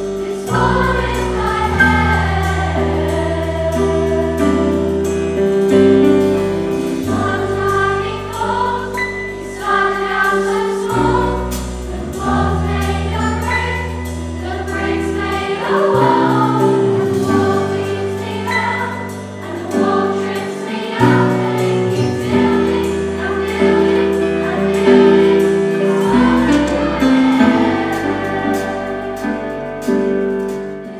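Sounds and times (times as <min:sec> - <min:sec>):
children's choir singing: 0:00.0 - 0:30.9
live band accompaniment: 0:00.0 - 0:30.9.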